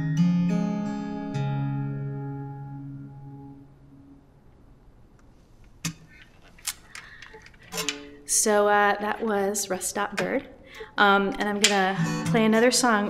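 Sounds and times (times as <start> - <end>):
acoustic guitar chord ringing: 0.0 - 4.8, 11.9 - 13.0.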